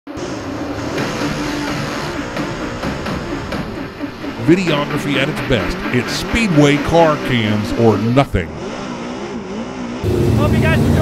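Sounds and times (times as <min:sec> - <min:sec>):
race car engines revving: 0:00.1 - 0:11.0.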